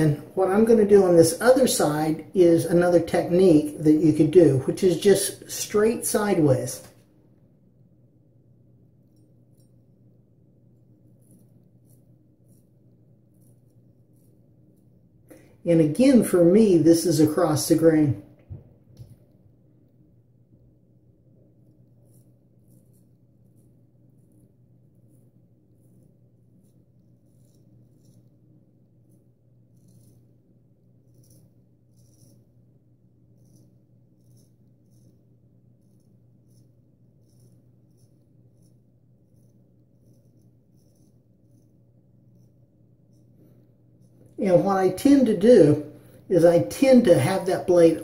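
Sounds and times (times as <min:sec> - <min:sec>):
low steady hum: 0:00.0 - 0:48.0
razor scraping stubble: 0:21.6 - 0:32.5, 0:33.2 - 0:48.0.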